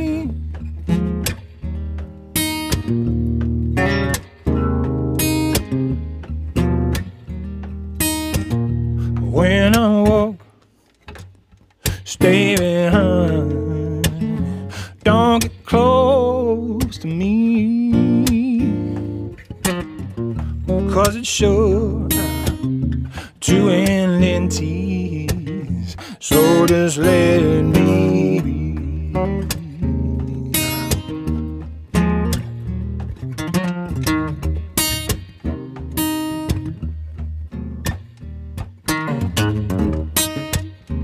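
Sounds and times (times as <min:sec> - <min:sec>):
man singing: 0:00.0 - 0:00.4, 0:09.2 - 0:10.4, 0:12.0 - 0:19.2, 0:20.6 - 0:22.5, 0:23.2 - 0:31.1
acoustic guitar strummed and picked: 0:00.0 - 0:41.0.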